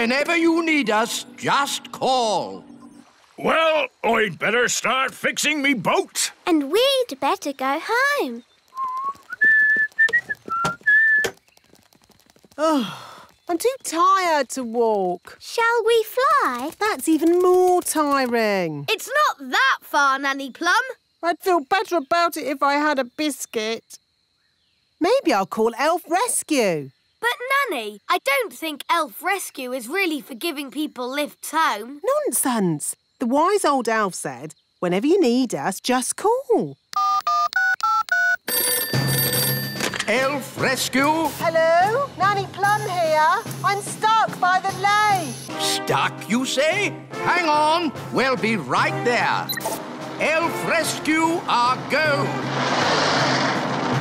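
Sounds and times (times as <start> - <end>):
man whistling a tune: 8.8 - 11.3
touch-tone keypad beeps: 37.0 - 40.0, 49.5 - 49.8
telephone ringing tone: 37.0 - 40.1.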